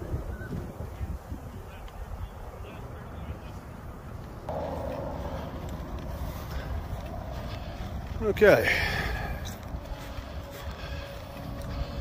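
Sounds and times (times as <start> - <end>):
wind rumbling on microphone: 0.0 - 12.0
steady noise: 4.5 - 8.8.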